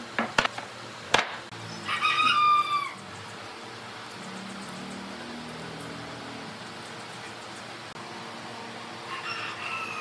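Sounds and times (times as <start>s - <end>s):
rooster crowing: 1.7s - 3.0s, 9.0s - 10.0s.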